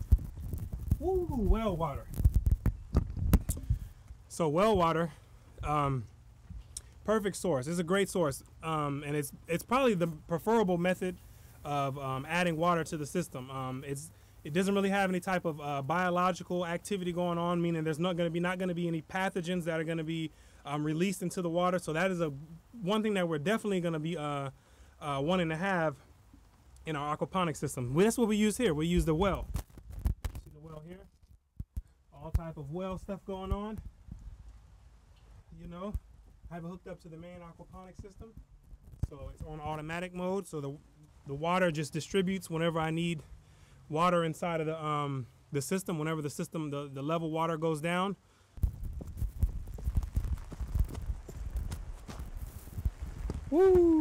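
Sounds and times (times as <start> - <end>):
camera handling rumble: 0.0 - 1.0, 2.0 - 4.2, 29.4 - 30.5, 48.6 - 53.5
camera handling knocks and thumps: 2.2 - 3.7.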